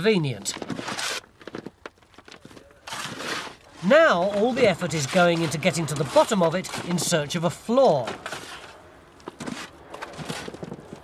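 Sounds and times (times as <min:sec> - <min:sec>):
loose earth scraping: 0:00.0 - 0:11.0.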